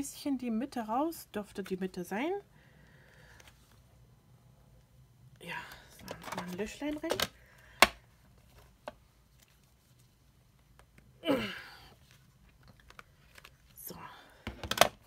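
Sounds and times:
card rustling: 5.9 - 10.8, 12.0 - 13.8.

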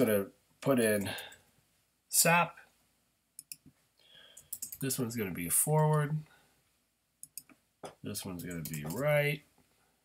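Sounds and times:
computer clicks: 3.4 - 3.7, 4.3 - 5.0, 7.2 - 7.6, 8.4 - 9.0.

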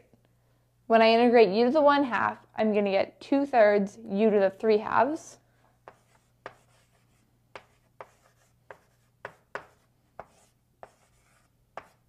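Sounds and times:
chalk tapping on blackboard: 5.8 - 12.0.

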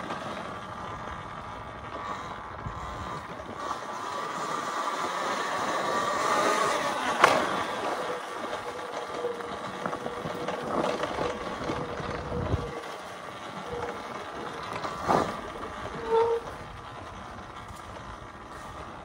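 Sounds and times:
tyre and rattle noise: 0.0 - 19.0
electric motor whine: 1.5 - 19.0.

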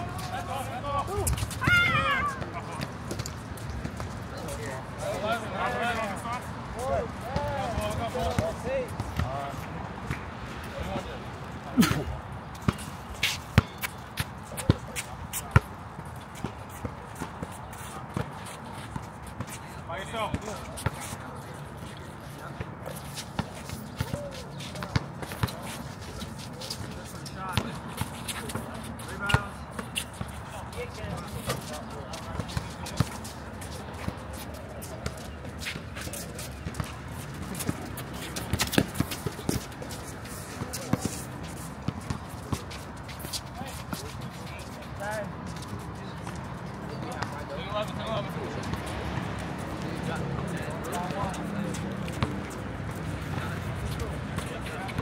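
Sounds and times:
players calling out: 0.0 - 3.0.

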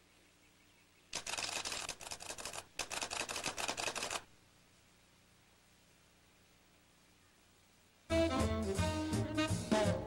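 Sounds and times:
dense rapid crackling: 1.2 - 4.3.

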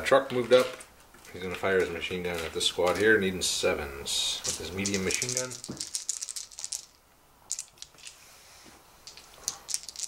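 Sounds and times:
dice rattling in a hand: 4.4 - 8.2, 9.0 - 10.0.

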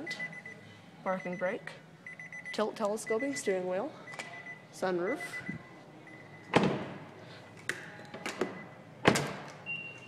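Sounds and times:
car door thuds: 6.5 - 7.0
high electronic beep: 9.7 - 10.0.

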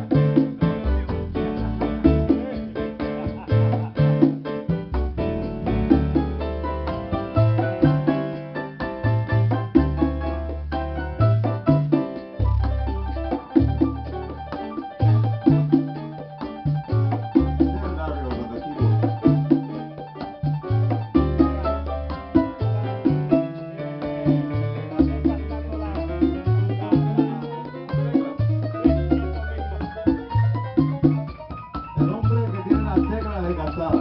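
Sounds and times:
low repeating bass figure: 0.0 - 15.9, 16.5 - 31.4
percussion: 0.0 - 34.0
piano: 0.0 - 34.0.

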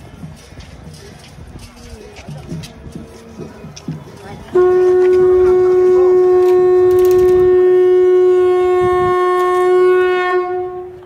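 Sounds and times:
conch shell blown: 4.5 - 11.0.

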